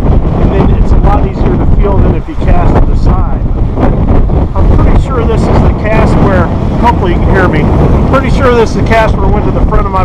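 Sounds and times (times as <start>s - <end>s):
wind buffeting microphone: 0.0s - 10.0s
man speaking: 0.4s - 3.5s, 4.5s - 10.0s.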